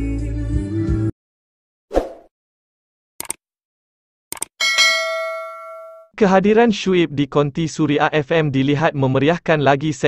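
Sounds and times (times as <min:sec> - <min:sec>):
notification bell ding: 0:04.6 - 0:06.1.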